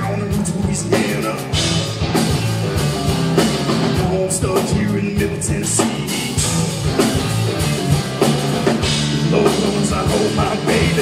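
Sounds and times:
bass guitar: 0:00.0 - 0:11.0
drum kit hits: 0:00.0 - 0:11.0
electric guitar: 0:00.0 - 0:11.0.

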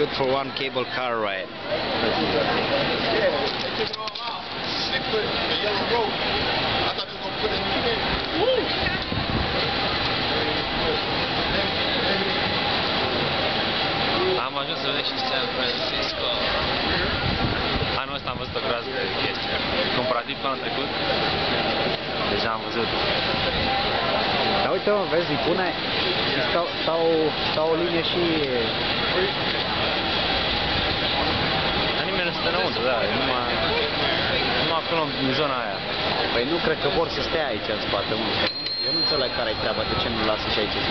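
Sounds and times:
city street noise: 0:00.0 - 0:40.9
crowd chatter: 0:00.0 - 0:40.9
man speaking: 0:32.0 - 0:40.9.

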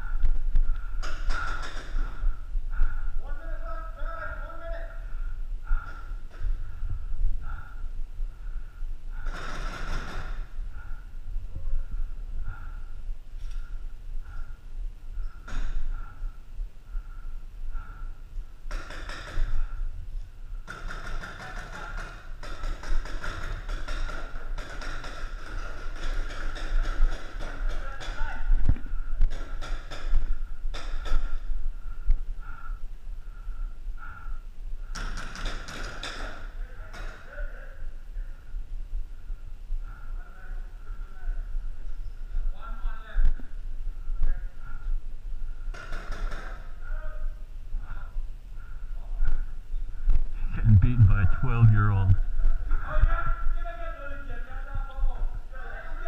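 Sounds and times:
players calling out: 0:50.5 - 0:52.2.

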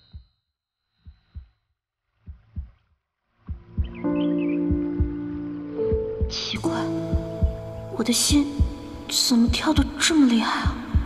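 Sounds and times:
heartbeat double thumps: 0:02.2 - 0:02.8, 0:03.5 - 0:11.0.

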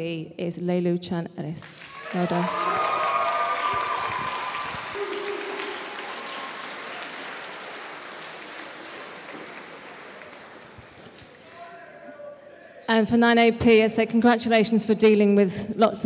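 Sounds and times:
audience applause: 0:01.8 - 0:11.7.

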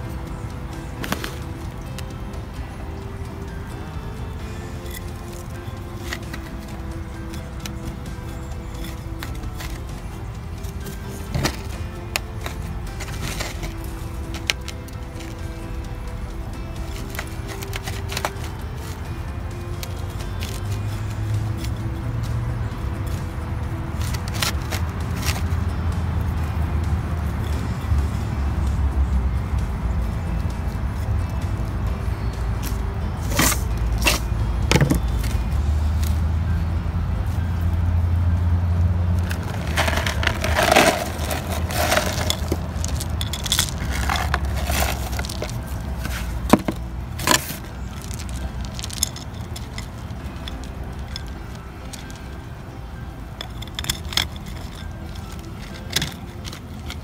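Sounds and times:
soil and pot being handled: 0:04.7 - 0:15.5, 0:16.8 - 0:19.0, 0:32.6 - 0:36.2, 0:39.2 - 0:52.3, 0:53.2 - 0:57.0
sharp knocks and scrapes: 0:04.8 - 0:15.5, 0:32.6 - 0:35.4, 0:39.2 - 0:51.3.

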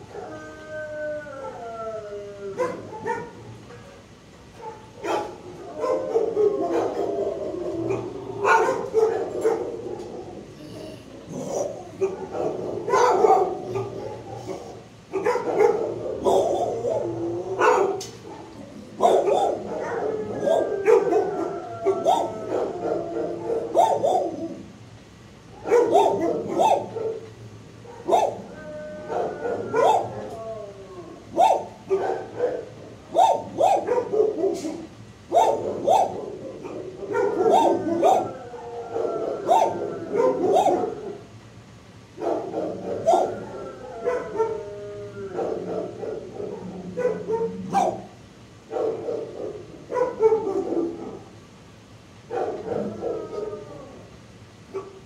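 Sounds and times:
dogs barking: 0:02.5 - 0:10.6, 0:11.3 - 0:30.5, 0:31.1 - 0:51.5, 0:52.2 - 0:53.6, 0:54.7 - 0:55.0
dogs whining: 0:04.6 - 0:24.7, 0:25.6 - 0:41.2, 0:42.6 - 0:48.1.

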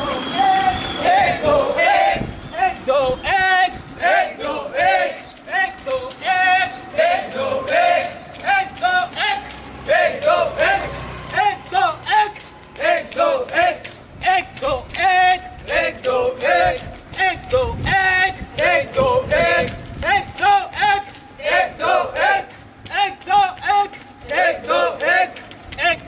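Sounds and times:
men chanting while running: 0:00.0 - 0:26.0.

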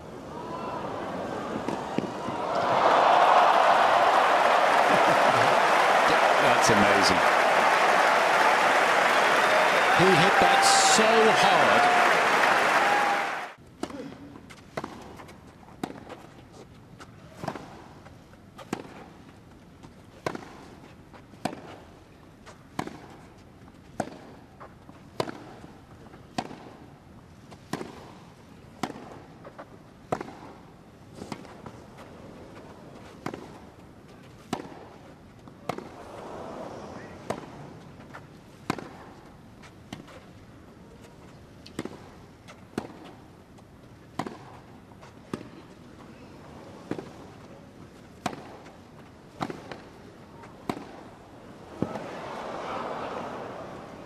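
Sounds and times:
crowd noise: 0:00.2 - 0:13.6, 0:35.8 - 0:37.9, 0:49.0 - 0:54.0
tennis ball bouncing: 0:14.5 - 0:16.2, 0:18.6 - 0:19.0, 0:19.8 - 0:20.6, 0:21.4 - 0:21.7, 0:22.7 - 0:23.1, 0:23.9 - 0:24.3, 0:25.1 - 0:25.6, 0:26.3 - 0:26.7, 0:28.8 - 0:30.6, 0:34.4 - 0:34.9, 0:35.6 - 0:36.0, 0:37.2 - 0:39.2, 0:41.6 - 0:43.2, 0:44.0 - 0:45.5, 0:46.8 - 0:47.4, 0:48.2 - 0:51.0, 0:51.7 - 0:52.2
tennis ball hit by racquets: 0:14.7 - 0:16.2, 0:18.6 - 0:19.1, 0:20.2 - 0:20.7, 0:21.4 - 0:21.8, 0:22.7 - 0:23.2, 0:23.9 - 0:24.4, 0:25.1 - 0:25.6, 0:26.3 - 0:26.8, 0:27.6 - 0:28.1, 0:28.8 - 0:30.6, 0:33.0 - 0:33.6, 0:34.4 - 0:35.0, 0:35.6 - 0:36.3, 0:37.2 - 0:39.2, 0:41.7 - 0:43.2, 0:44.1 - 0:45.5, 0:46.8 - 0:47.4, 0:48.2 - 0:51.1, 0:51.7 - 0:52.6.

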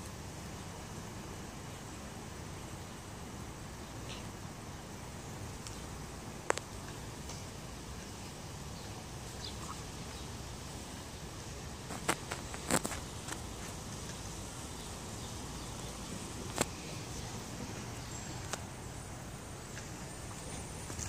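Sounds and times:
low street background noise: 0:00.0 - 0:21.0.

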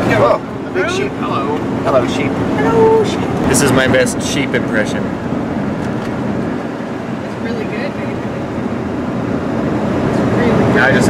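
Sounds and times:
road and engine noise: 0:00.0 - 0:11.0.

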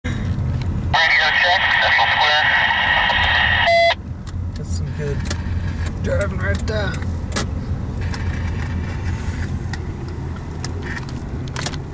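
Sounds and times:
car engine and road hum: 0:00.1 - 0:11.9
voice through radio static: 0:01.0 - 0:03.8
short radio beep: 0:01.0 - 0:04.0.

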